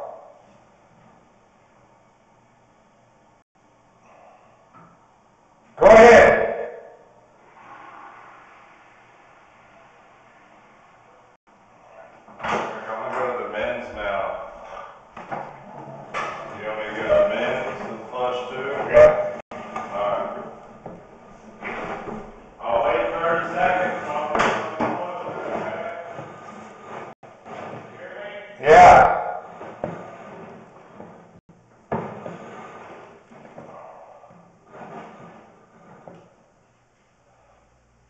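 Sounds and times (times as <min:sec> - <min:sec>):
muffled voices: 0:16.2 - 0:20.6, 0:22.6 - 0:26.3.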